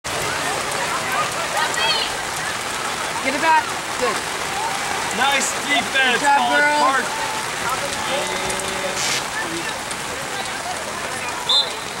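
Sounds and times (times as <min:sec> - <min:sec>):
steady rain hiss: 0:00.1 - 0:12.0
distant shouts: 0:04.2 - 0:12.0.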